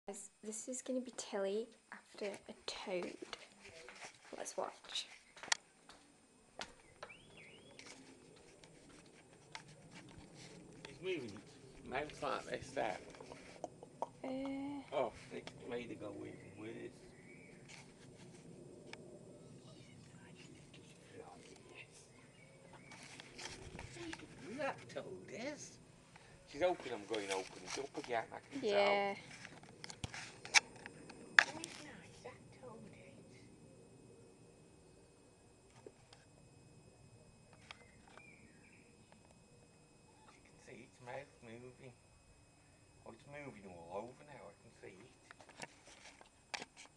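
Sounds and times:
faint rustling: 0.9 - 13.6, 14.9 - 33.5
faint wavering whistle: 6.7 - 8.4, 15.1 - 18.6, 32.2 - 45.0.

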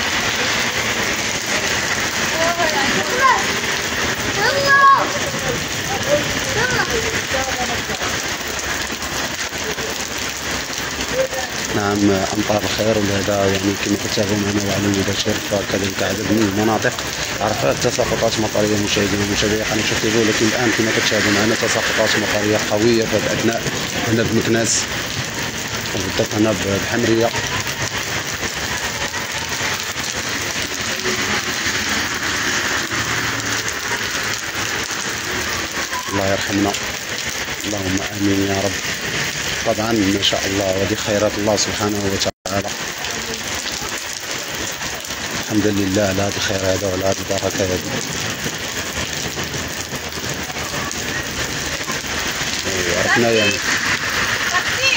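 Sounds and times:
heavy rain on pavement: 0.0 - 54.9.

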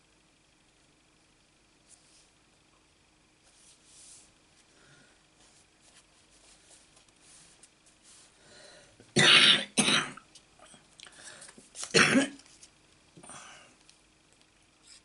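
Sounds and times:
person coughing: 9.2 - 10.2, 11.9 - 12.4.

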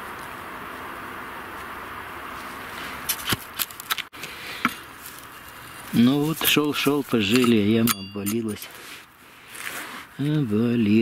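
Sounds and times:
hoe clicking and scraping soil: 2.7 - 10.4.

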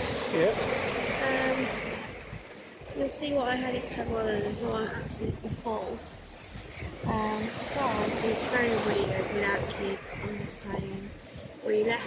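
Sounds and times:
small waves washing on beach: 0.0 - 12.0.

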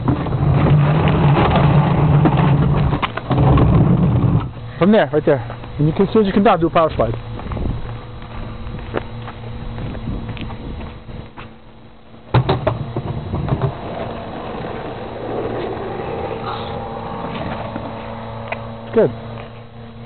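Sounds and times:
skateboard wheels rolling on asphalt: 0.0 - 4.7, 5.3 - 20.0
skateboard hitting something: 12.3 - 18.7.

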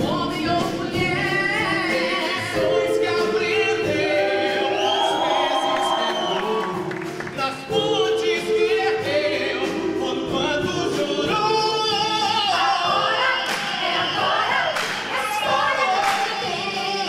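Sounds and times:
live orchestra: 0.0 - 17.0.

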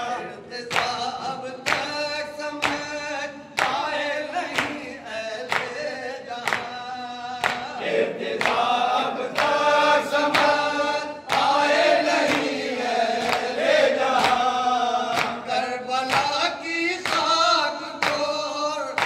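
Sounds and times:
men chanting together: 0.0 - 19.0
hands slapping chests: 7.4 - 10.6, 11.3 - 14.5, 15.1 - 15.4.

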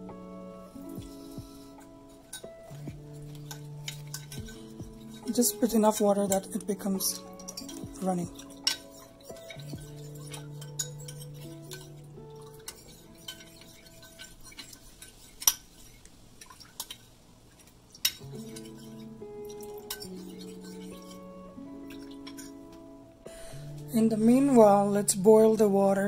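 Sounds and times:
background music: 0.0 - 14.9, 18.2 - 26.0
spoon scraping ceramic bowl: 1.1 - 16.0, 17.6 - 22.6.

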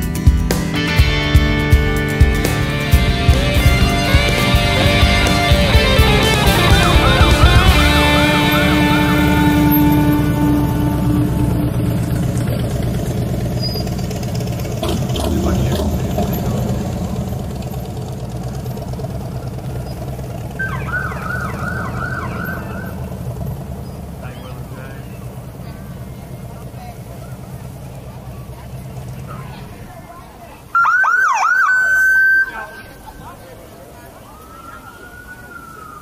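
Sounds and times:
motorcycle engines passing: 0.0 - 36.0
siren yelping: 4.8 - 12.1, 20.5 - 23.4, 30.7 - 33.0, 34.2 - 36.0.

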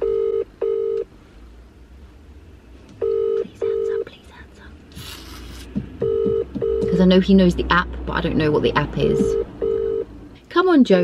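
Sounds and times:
phone ringing tone double beeps: 0.0 - 1.0, 3.0 - 3.8, 6.0 - 7.0, 9.1 - 10.1.

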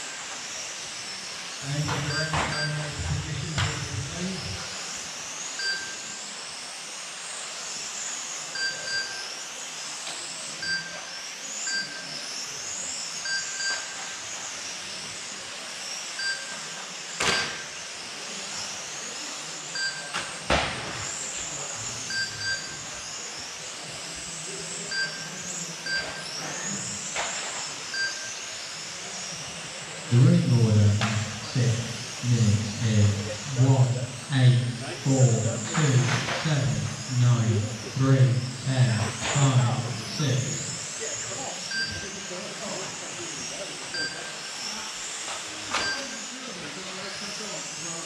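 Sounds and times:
electric rc cars whining: 0.0 - 48.0
lap timer short beeps: 2.1 - 2.9, 41.7 - 42.1.

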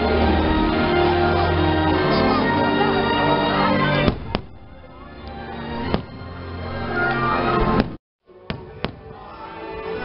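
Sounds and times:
show music: 0.0 - 7.9
fireworks bangs: 4.0 - 5.0, 5.8 - 6.4.

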